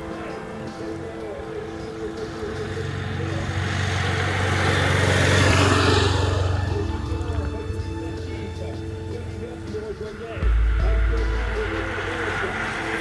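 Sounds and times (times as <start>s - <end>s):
road noise: 0.0s - 13.0s
motorcycle passing by: 2.3s - 9.4s.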